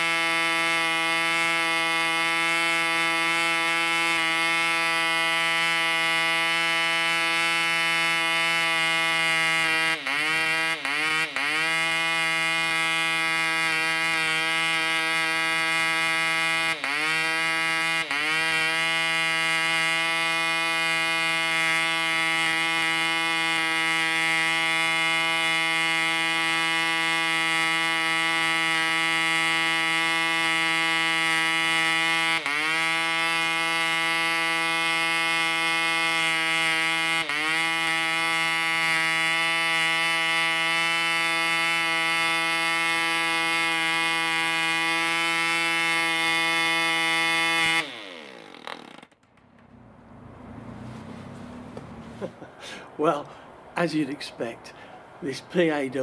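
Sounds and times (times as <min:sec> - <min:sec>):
model engine running: 0:00.0 - 0:50.6.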